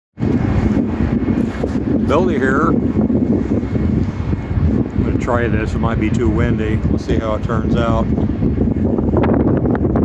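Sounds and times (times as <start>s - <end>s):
wind buffeting microphone: 0.2s - 10.0s.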